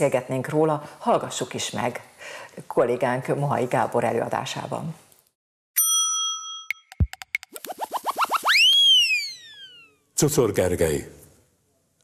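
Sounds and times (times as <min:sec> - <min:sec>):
short rising electronic chirps: 0:06.8 - 0:10.0.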